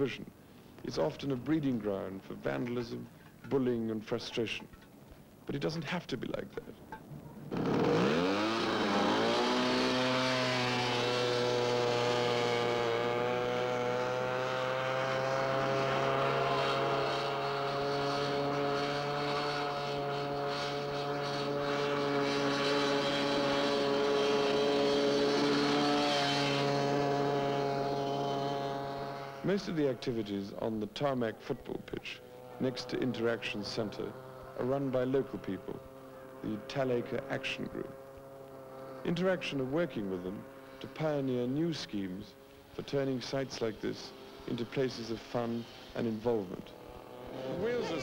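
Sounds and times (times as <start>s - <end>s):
go-kart engine revving: 7.1s - 48.0s.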